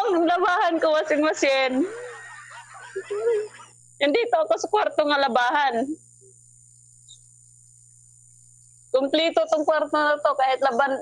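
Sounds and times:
high hiss: 0.6 - 11.0.

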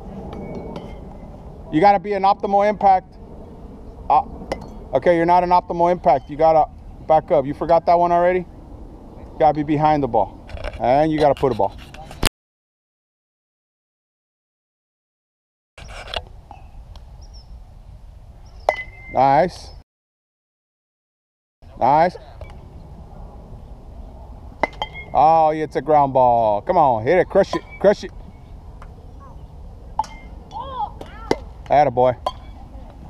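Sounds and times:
baseball bat striking ball: 18.7 - 19.1, 24.6 - 25.2, 30.0 - 32.6
child calling out: 30.5 - 31.4
bat cracking ball: 31.0 - 32.5.

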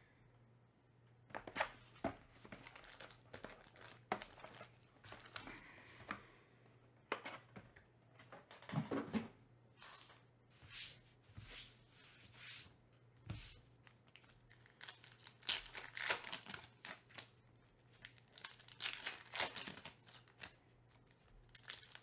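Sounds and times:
foil packs rustling: 2.0 - 5.7, 14.2 - 22.0
plastic wrap and cardboard tearing: 2.5 - 5.4, 14.1 - 22.0.

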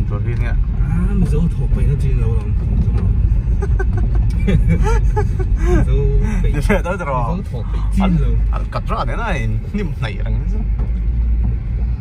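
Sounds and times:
people talking: 0.0 - 3.1, 5.6 - 10.7
car driving rumble inside cabin: 0.0 - 12.0.

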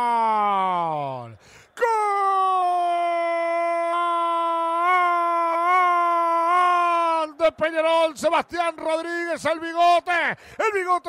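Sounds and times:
commentator shouting goal: 0.0 - 11.0.

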